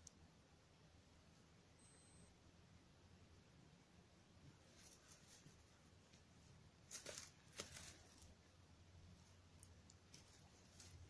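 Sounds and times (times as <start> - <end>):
rustling of dry leaves: 4.5 - 11.0.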